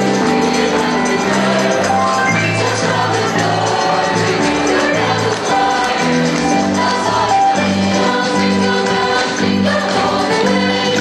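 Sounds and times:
choir singing: 0.0 - 11.0
instrumental backing with beat: 0.6 - 8.1.

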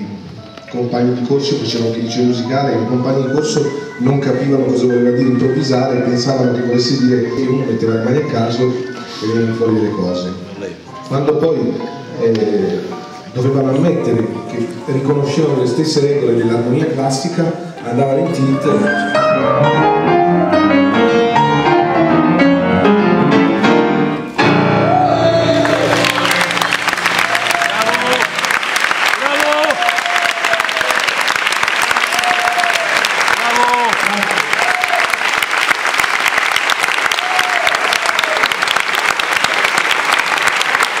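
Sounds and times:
grand piano playing: 0.0 - 29.2
audience cheering: 24.6 - 41.0
audience applauding: 24.9 - 41.0.

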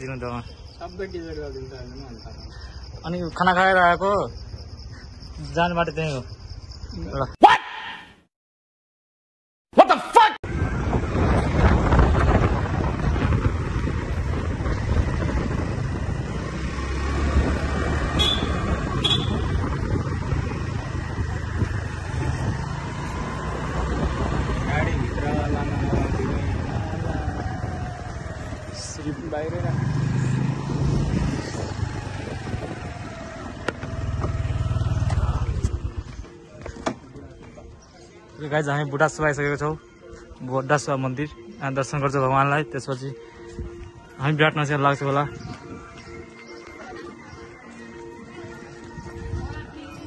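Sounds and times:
wind buffeting microphone: 10.4 - 36.2, 48.6 - 50.0
motorcycle engine: 10.5 - 37.0.

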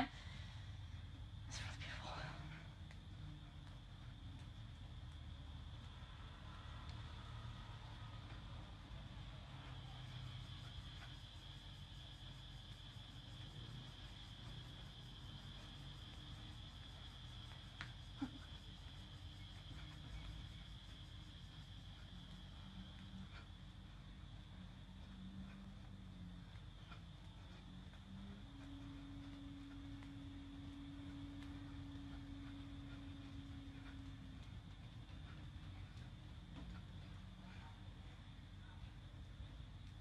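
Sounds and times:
low hum: 0.0 - 40.0.

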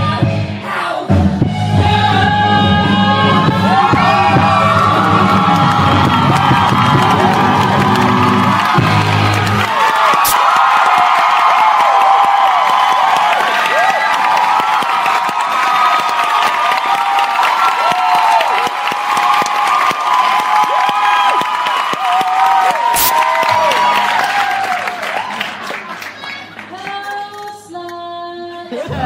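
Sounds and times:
audience cheering and applause: 3.1 - 27.5
high-pitched shrieks and whoops: 9.7 - 25.4.

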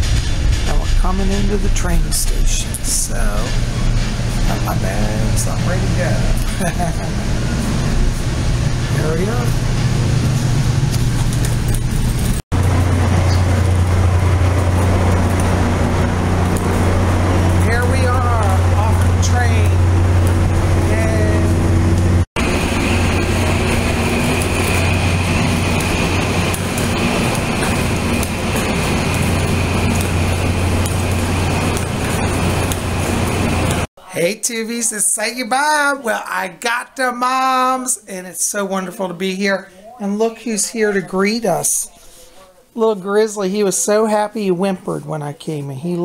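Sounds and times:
steady high whine: 0.0 - 33.9
diesel locomotive idling hum: 2.2 - 33.9.

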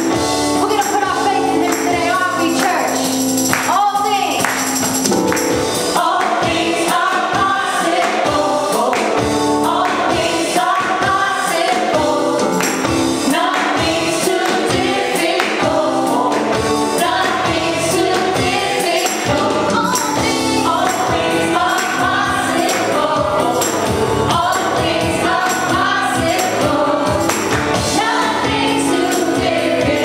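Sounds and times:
tambourine: 0.0 - 9.8, 10.4 - 30.0
women singing gospel song: 0.6 - 3.0, 5.8 - 30.0.

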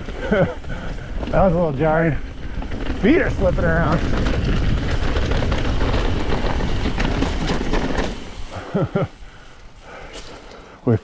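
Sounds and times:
bike clattering over bumps: 0.0 - 10.6
tyres rumbling on dirt: 0.0 - 11.0
wind on microphone: 2.3 - 7.9.

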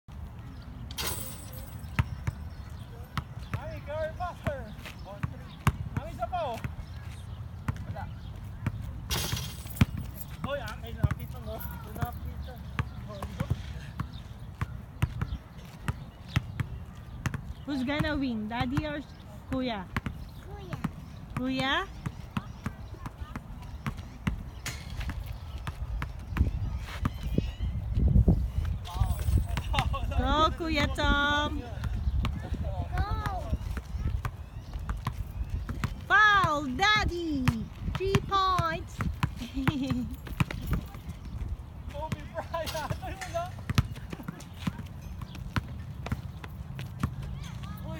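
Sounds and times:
basketballs bouncing on asphalt: 0.1 - 47.9
faint voices talking: 0.1 - 47.9.

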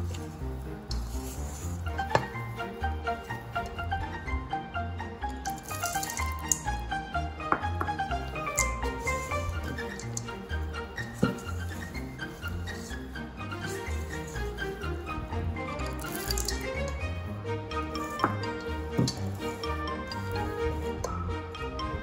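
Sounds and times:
instrumental music: 0.0 - 22.0.

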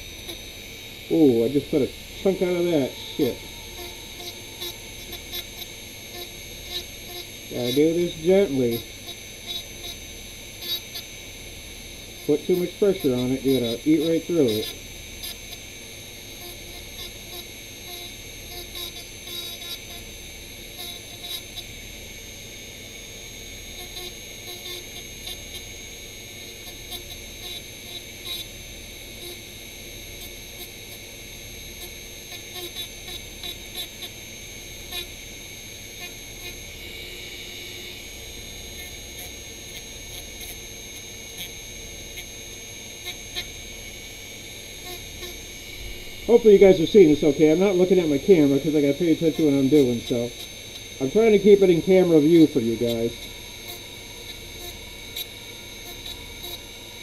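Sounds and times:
grinding bit scratching: 0.0 - 11.2, 12.0 - 15.6, 44.8 - 56.9
rotary tool high whine: 0.0 - 57.0.

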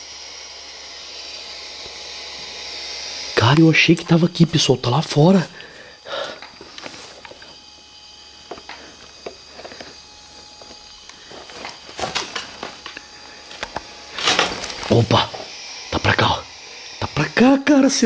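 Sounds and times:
footsteps on brick rubble: 6.4 - 7.6, 8.5 - 14.9.

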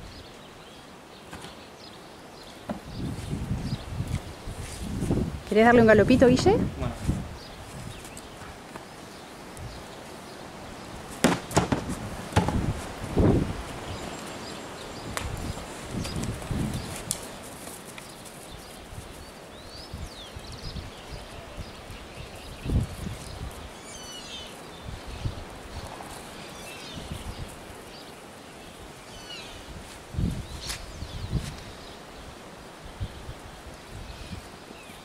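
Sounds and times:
outdoor ambience: 0.0 - 35.0
sharp knocks and thuds: 2.7 - 2.9, 11.2 - 12.8.

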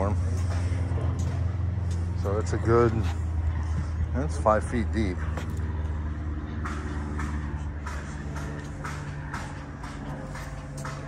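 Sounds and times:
engine idling: 0.0 - 11.0
footsteps on fibreglass deck: 0.0 - 11.0.

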